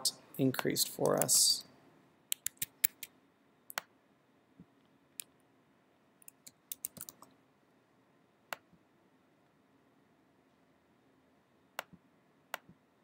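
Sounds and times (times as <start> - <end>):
mouse clicks: 1.0 - 1.4, 2.3 - 3.1, 3.7 - 3.9, 6.2 - 7.3
keyboard keystrokes: 6.2 - 7.3.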